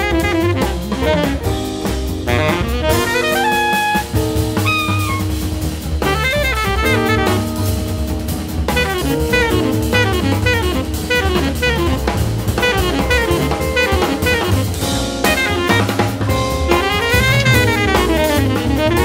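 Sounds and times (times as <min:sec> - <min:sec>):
busy drum kit: 0:00.0 - 0:19.0
fast melodic line: 0:00.0 - 0:19.0
jazz group playing: 0:00.0 - 0:19.0.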